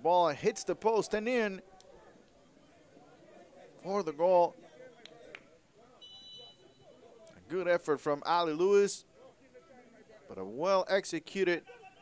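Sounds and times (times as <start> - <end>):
faint outdoor match ambience: 0.0 - 12.0.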